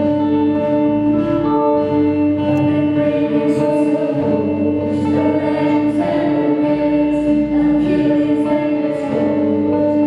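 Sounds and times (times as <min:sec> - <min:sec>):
live band playing: 0:00.0 - 0:07.9
voices singing together: 0:02.6 - 0:10.0.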